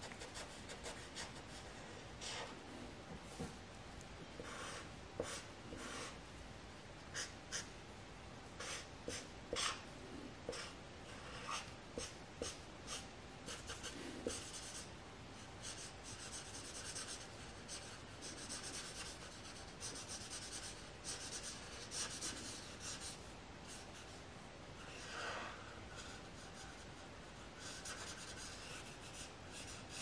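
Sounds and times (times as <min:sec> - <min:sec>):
marker scratching on paper: 0:02.2 - 0:02.6, 0:04.4 - 0:06.2, 0:07.2 - 0:07.7, 0:08.6 - 0:09.8, 0:10.5 - 0:14.9, 0:15.6 - 0:24.2, 0:24.8 - 0:30.0.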